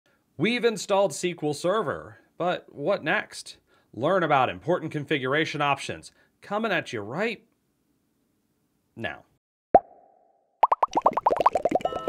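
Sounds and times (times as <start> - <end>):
cartoon pitched pops: 9.7 - 12.0.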